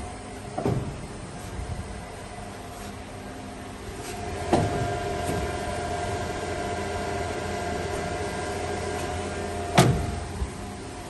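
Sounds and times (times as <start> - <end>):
machinery humming and whining: 0.0 - 11.0.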